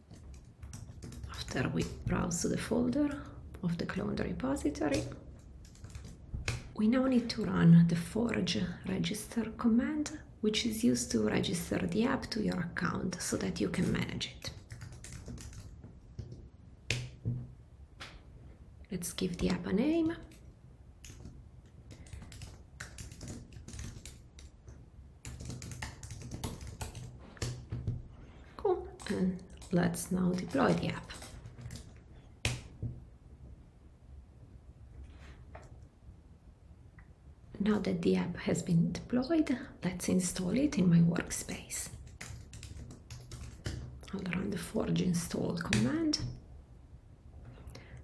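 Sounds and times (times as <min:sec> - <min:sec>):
computer keyboard typing: 0:00.0 - 0:02.0, 0:04.8 - 0:06.7, 0:13.8 - 0:17.2, 0:21.0 - 0:28.0, 0:29.0 - 0:32.6, 0:41.9 - 0:44.0.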